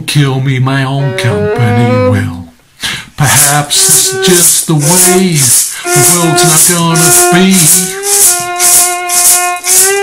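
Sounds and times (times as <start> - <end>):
person singing: 0.7 - 2.5, 3.2 - 10.0
blues fiddle long note: 0.8 - 2.5, 3.2 - 10.0
shaker steady beat: 3.2 - 10.0.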